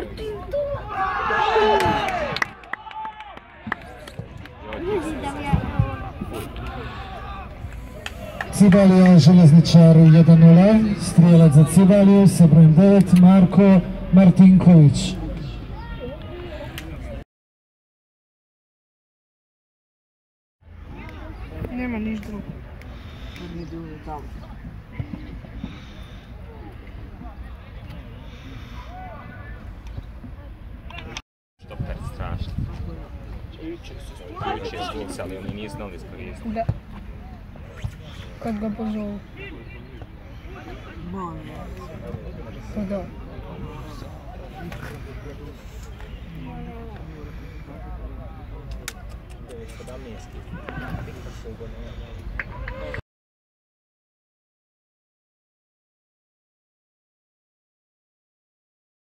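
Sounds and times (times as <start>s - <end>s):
football players shouting: 0.6s - 4.0s, 4.8s - 7.6s
players shouting: 0.6s - 16.4s.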